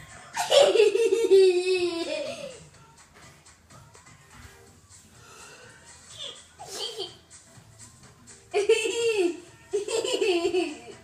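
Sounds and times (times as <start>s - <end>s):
high-pitched laughter: 0.3s - 2.6s, 8.6s - 11.0s.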